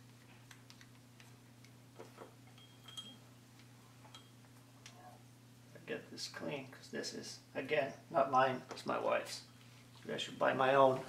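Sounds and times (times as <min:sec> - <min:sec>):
low steady hum: 0:00.0 - 0:11.0
light glass ting: 0:02.6 - 0:03.2.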